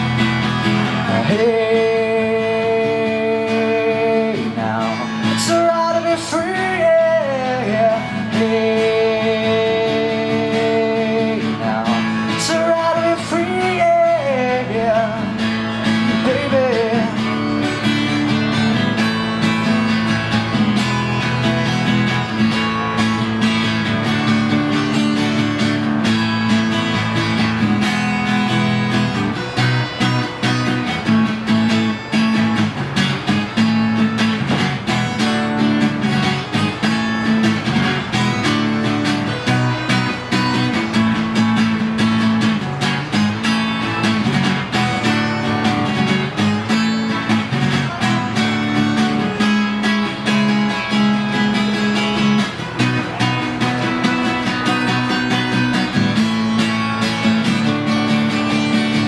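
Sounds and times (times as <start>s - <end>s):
acoustic guitar strummed: 0.0s - 59.0s.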